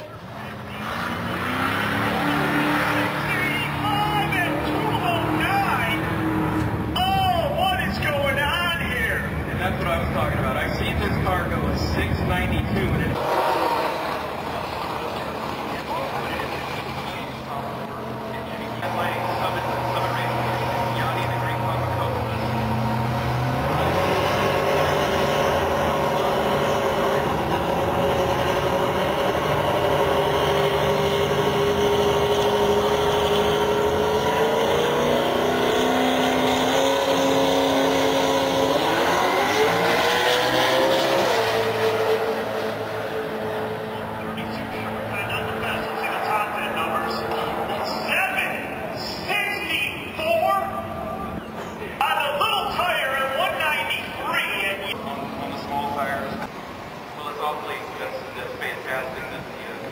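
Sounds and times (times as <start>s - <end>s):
race car engines idling and revving: 0.0s - 59.9s.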